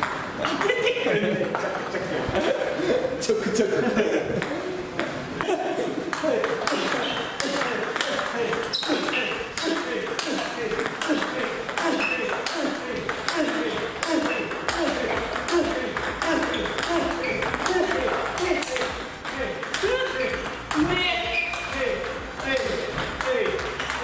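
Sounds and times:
table tennis balls clicking: 4.3 - 24.0.

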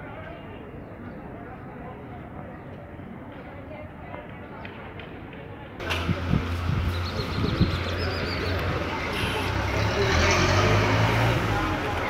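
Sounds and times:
people talking: 0.0 - 12.0
vehicle engine running: 5.8 - 12.0.

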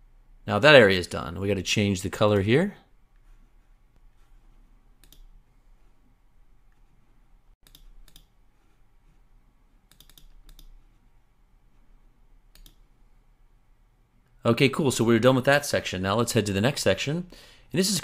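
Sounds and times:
computer mouse clicks: 5.0 - 5.3, 7.6 - 8.8, 9.8 - 11.0, 12.5 - 12.9.

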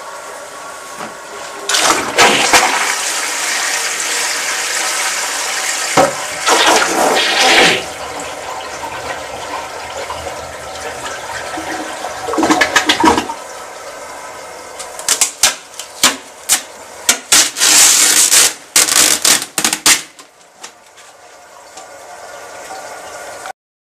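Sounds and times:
toilet flushing: 0.0 - 19.1, 20.5 - 23.5.

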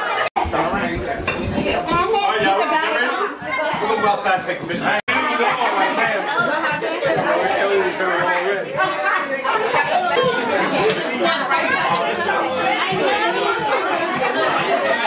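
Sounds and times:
overlapping chatter of many people: 0.0 - 15.0.

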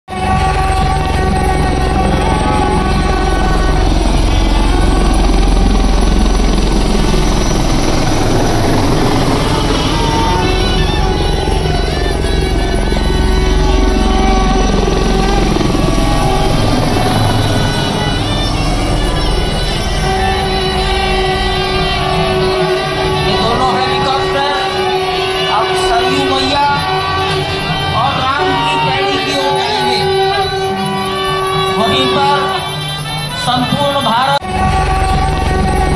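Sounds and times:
helicopter rotor beating: 0.1 - 35.9
music playing: 0.1 - 35.9.

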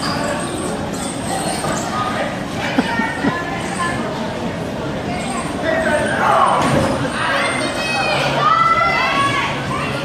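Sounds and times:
crowd din: 1.4 - 10.0
children shouting and squealing: 7.2 - 10.0.

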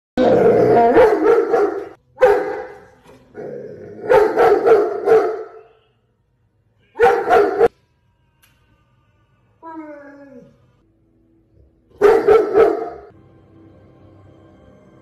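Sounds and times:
large dog barking: 0.8 - 2.8, 3.9 - 5.6, 7.0 - 7.7, 12.0 - 13.1.

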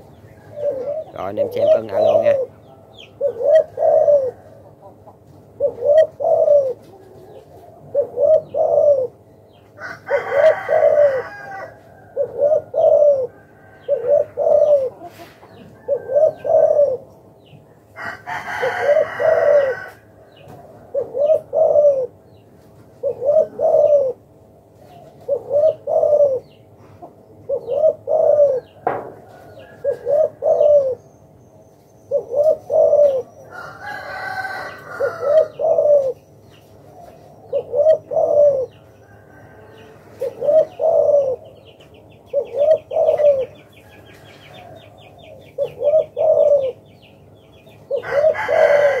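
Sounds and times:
dove cooing: 0.0 - 31.1, 32.0 - 49.0.

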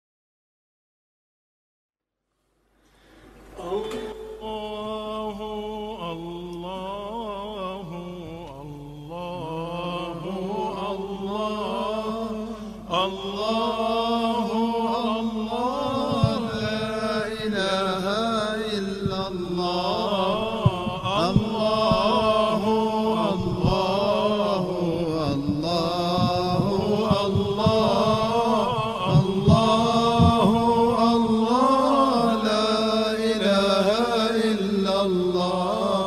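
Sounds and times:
person chanting melismatic phrases: 3.6 - 36.0.

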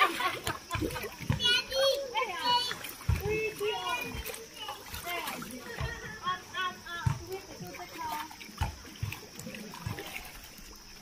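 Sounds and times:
children calling and chattering: 0.0 - 10.8
water splashing: 0.0 - 11.0.

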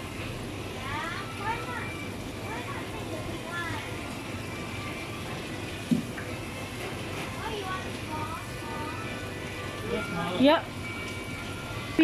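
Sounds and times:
faint music: 0.0 - 12.0
steady hum: 0.0 - 12.0.

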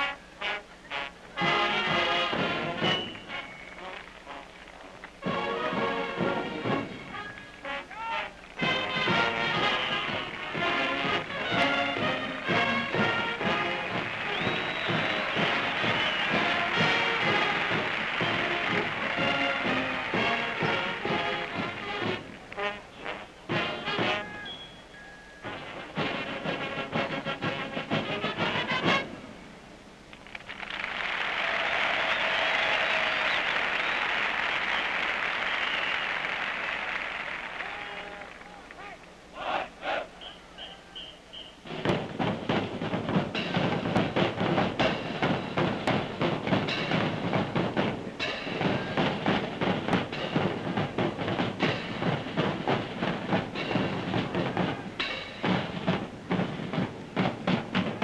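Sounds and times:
marching band brass and drums: 0.0 - 58.0
stadium crowd applauding: 7.1 - 22.7, 30.1 - 39.2.

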